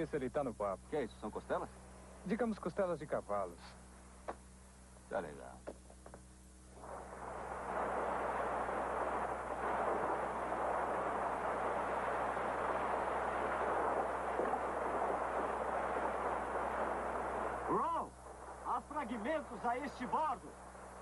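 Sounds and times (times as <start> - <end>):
boat engine and water rushing: 6.8 - 21.0.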